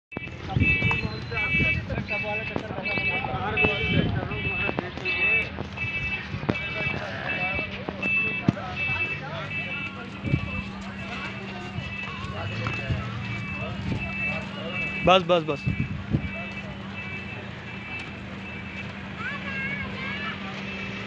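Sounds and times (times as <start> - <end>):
electronic beeper beeping: 0.1 - 18.8
people talking: 0.2 - 21.0.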